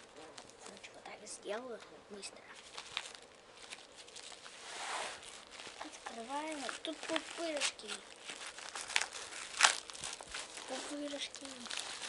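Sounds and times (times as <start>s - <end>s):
rustling scrape: 2.5s - 12.0s
paper mailer being cut: 5.1s - 8.0s
child murmuring: 5.8s - 8.1s, 10.7s - 11.8s.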